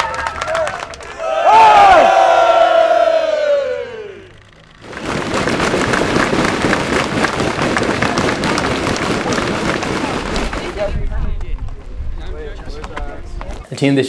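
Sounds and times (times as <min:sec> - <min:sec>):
long held cheer: 0:00.0 - 0:04.5
crowd cheering and clapping: 0:00.0 - 0:11.0.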